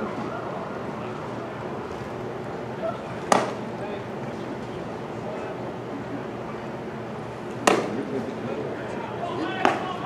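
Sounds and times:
baseball sharp crack: 0:03.1 - 0:03.7, 0:07.5 - 0:08.3, 0:09.6 - 0:10.0.

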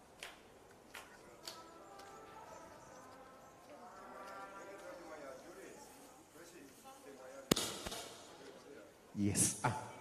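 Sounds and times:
faint murmured voices: 0:00.9 - 0:09.1.

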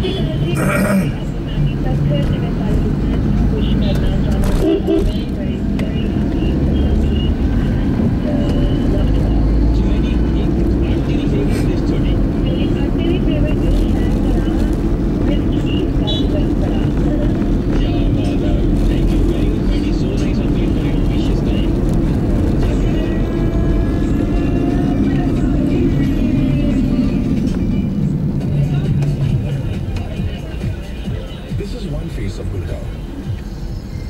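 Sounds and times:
car radio talking: 0:00.0 - 0:33.7
engine and road rumble: 0:00.0 - 0:34.0.

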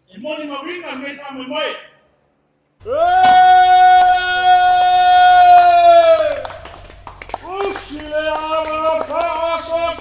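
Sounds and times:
man's long ceremonial call: 0:02.8 - 0:10.0
sharp claps: 0:03.2 - 0:10.0.

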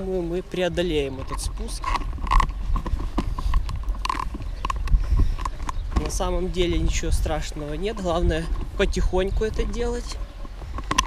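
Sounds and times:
stroller rattling over bumps: 0:00.0 - 0:11.0.

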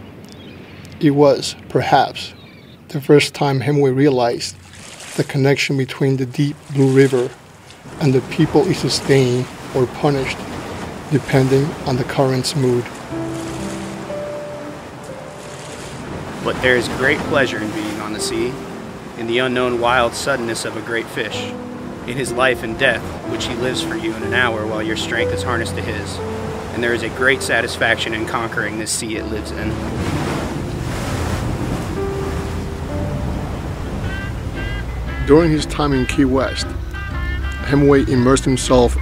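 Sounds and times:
wind: 0:00.0 - 0:39.0
sea waves breaking: 0:03.8 - 0:39.0
soft background music: 0:11.5 - 0:39.0.

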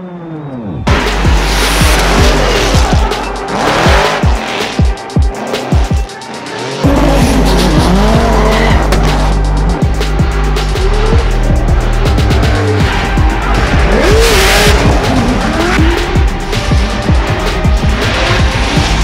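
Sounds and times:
car engines revving: 0:00.0 - 0:19.0
tires squealing: 0:00.0 - 0:19.0
music with steady bass line: 0:00.8 - 0:19.0.

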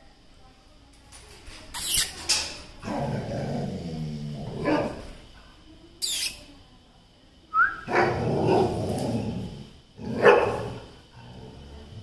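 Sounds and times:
dog barking: 0:10.2 - 0:10.7.

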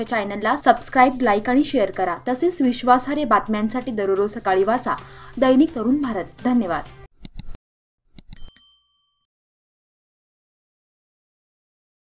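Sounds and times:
quick clicks: 0:07.2 - 0:07.6
bright bell ding: 0:08.3 - 0:09.3.

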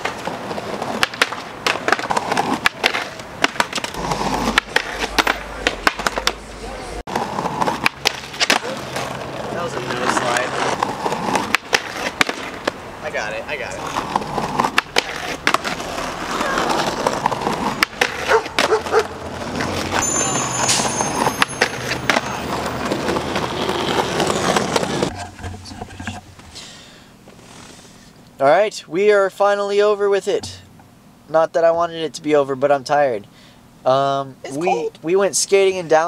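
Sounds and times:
skateboard clacks: 0:00.0 - 0:06.5, 0:07.1 - 0:12.8, 0:13.9 - 0:26.3
skateboard grinding on concrete: 0:00.0 - 0:28.0.

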